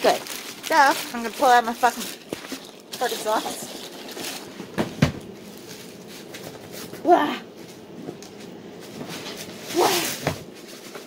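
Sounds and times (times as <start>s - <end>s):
faint rustling and handling: 0.0s - 11.0s.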